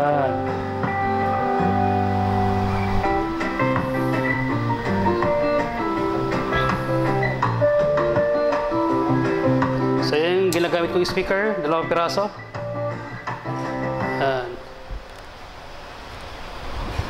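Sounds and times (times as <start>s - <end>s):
instrumental music over speakers: 0.0s - 15.1s.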